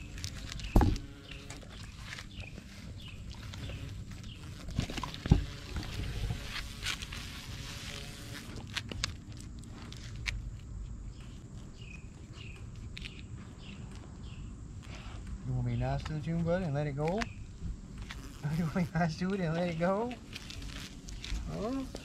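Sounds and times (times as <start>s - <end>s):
dogs sniffing and snuffling: 0.0s - 15.7s.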